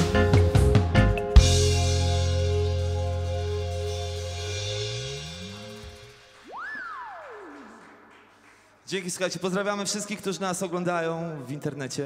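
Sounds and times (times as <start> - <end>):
bass guitar sliding up: 0.0 - 6.4
high gliding tone: 3.7 - 8.2.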